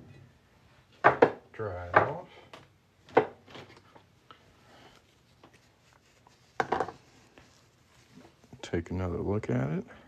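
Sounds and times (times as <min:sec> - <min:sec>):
cloth rubbing: 0:04.9 - 0:08.7.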